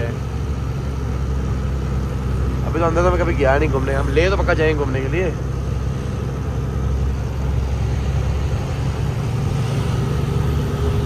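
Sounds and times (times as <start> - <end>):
road noise: 0.0 - 11.0
truck engine running: 0.0 - 11.0.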